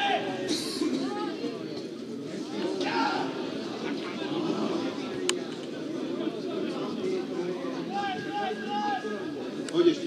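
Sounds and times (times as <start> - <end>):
low background chatter: 0.0 - 10.0.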